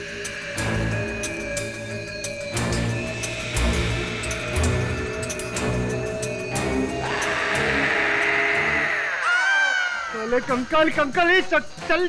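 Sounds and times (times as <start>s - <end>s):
low pulsing notes: 0.0s - 9.2s
sustained hissing swell: 0.0s - 11.8s.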